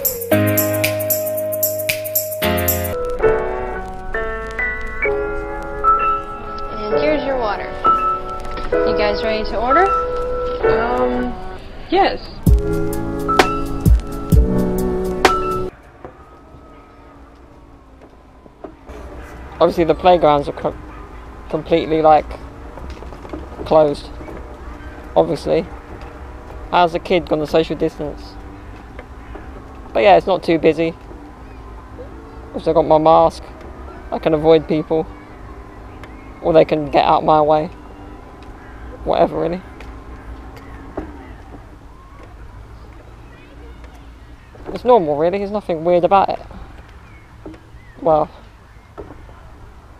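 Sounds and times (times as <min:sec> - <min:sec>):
background music with steady beat: 0:00.0 - 0:11.6, 0:12.4 - 0:15.7.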